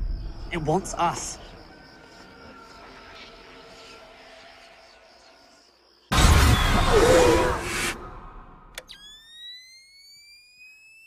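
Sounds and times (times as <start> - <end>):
click: 8.7 - 9.0.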